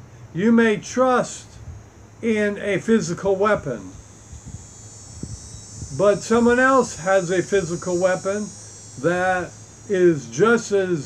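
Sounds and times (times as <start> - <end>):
high-pitched insect chorus: 0.0 - 11.0
low hum: 1.3 - 11.0.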